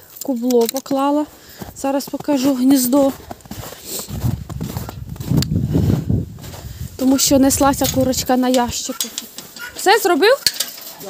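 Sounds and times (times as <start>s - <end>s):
footsteps in snow: 0.8s - 11.0s.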